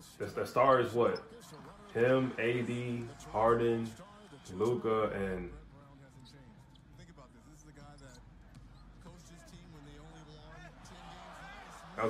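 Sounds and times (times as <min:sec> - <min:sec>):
commentator talking: 0:00.0 - 0:01.2, 0:01.9 - 0:05.6.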